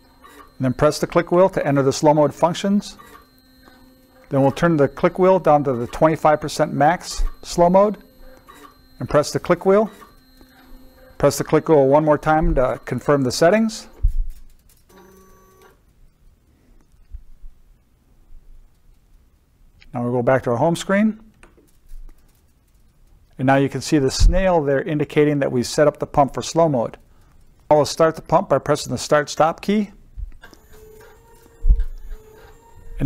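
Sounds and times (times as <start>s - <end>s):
pump motor whirring: 0.0s - 14.2s
short low thump: 24.2s - 24.4s.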